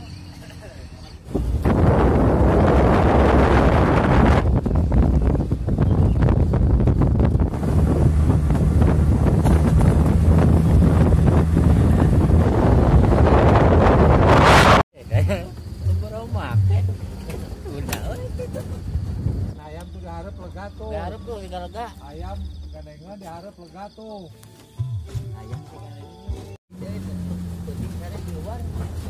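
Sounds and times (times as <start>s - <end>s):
vehicle drone: 0.0s - 14.8s, 26.7s - 29.0s
wind buffeting microphone: 1.2s - 14.8s, 16.4s - 19.6s.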